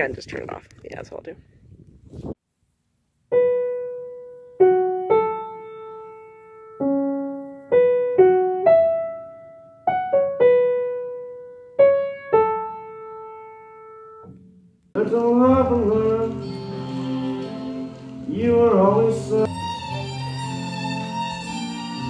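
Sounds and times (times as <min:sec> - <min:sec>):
slow piano melody: 0:03.3 - 0:22.0.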